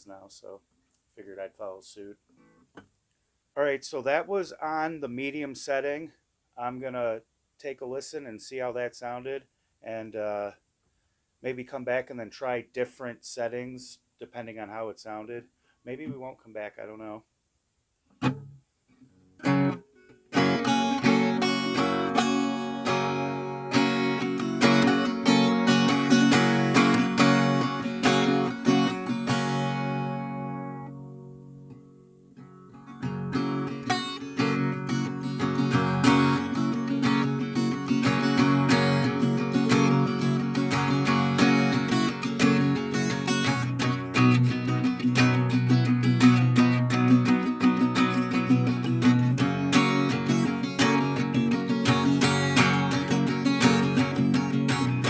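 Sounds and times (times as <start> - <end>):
acoustic guitar picking and strumming: 18.1 - 55.0.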